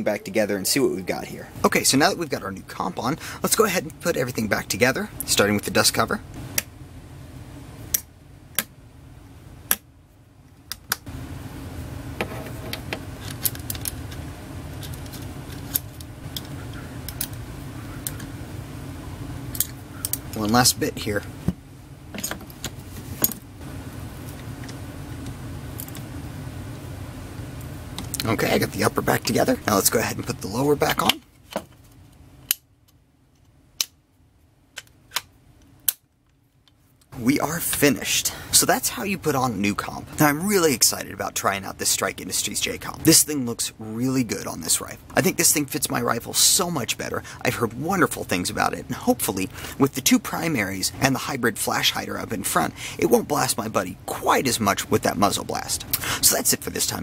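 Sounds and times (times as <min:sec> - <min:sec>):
low steady hum: 0:00.0 - 0:57.0
metal parts clicking and clinking: 0:22.1 - 0:23.4.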